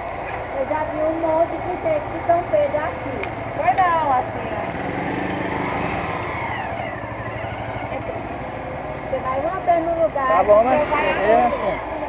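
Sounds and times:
motorcycle engine at low speed: 0:02.0 - 0:10.8.

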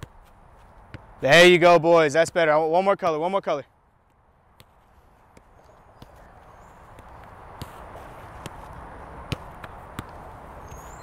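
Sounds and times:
football kicks on grass: 0:00.0 - 0:01.1, 0:04.6 - 0:10.8.

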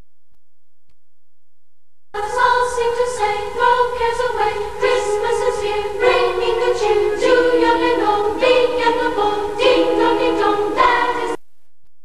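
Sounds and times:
choir singing held chords: 0:02.2 - 0:11.4.

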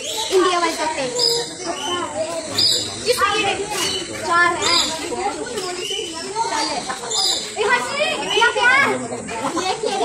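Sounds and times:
children's excited chatter: 0:00.0 - 0:10.0.

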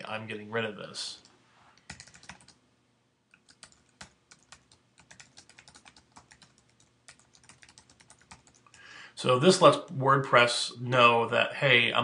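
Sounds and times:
typing on computer keyboard: 0:01.9 - 0:02.6, 0:03.4 - 0:08.8.

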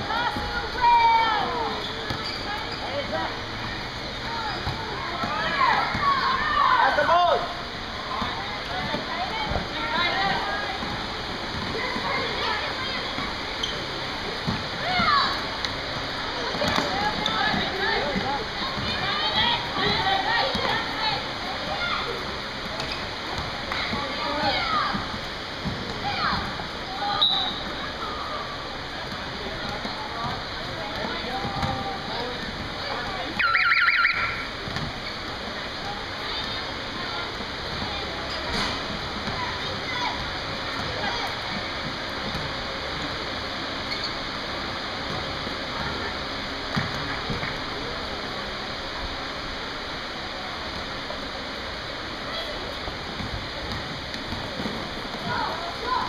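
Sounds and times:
sneaker squeaks: 0:01.4 - 0:06.4, 0:13.0 - 0:15.4, 0:16.4 - 0:19.1, 0:22.6 - 0:25.1, 0:25.9 - 0:28.2, 0:29.1 - 0:36.8, 0:37.7 - 0:40.2, 0:43.8 - 0:44.4
basketball bouncing: 0:02.0 - 0:02.4, 0:04.5 - 0:06.2, 0:16.4 - 0:19.1, 0:29.0 - 0:33.4, 0:34.6 - 0:36.6, 0:46.7 - 0:47.5, 0:53.0 - 0:55.4.

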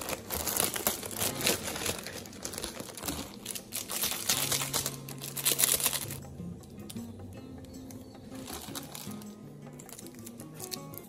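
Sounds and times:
plastic packet crinkling: 0:00.0 - 0:07.0, 0:08.3 - 0:11.0
background music with bass: 0:04.4 - 0:11.0.

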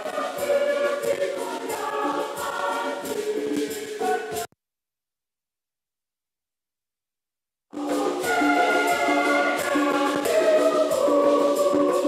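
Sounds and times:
choir singing: 0:00.0 - 0:04.5, 0:07.8 - 0:12.0.

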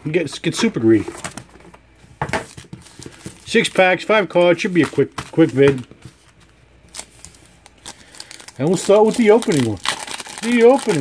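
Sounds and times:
pack wrappers crinkling: 0:06.8 - 0:11.0.

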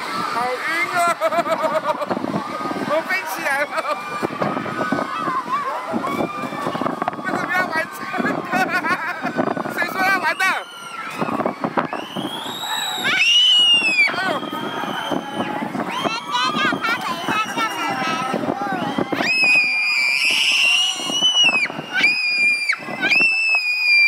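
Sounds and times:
riders shouting and chattering: 0:00.0 - 0:24.0.

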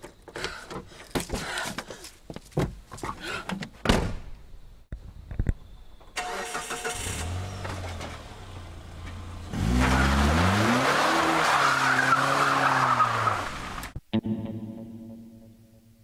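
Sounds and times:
car engine starting and revving: 0:06.2 - 0:14.0.

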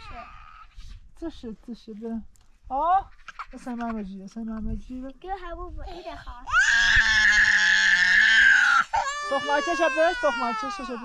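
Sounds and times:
young child wailing: 0:06.5 - 0:11.0.

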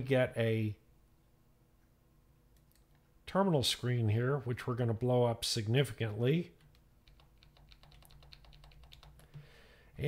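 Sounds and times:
faint keyboard keystrokes: 0:06.6 - 0:09.5.

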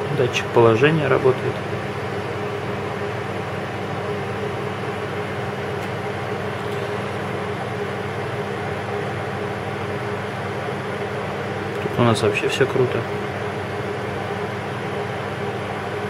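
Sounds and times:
kitchen appliance humming: 0:00.0 - 0:16.0.

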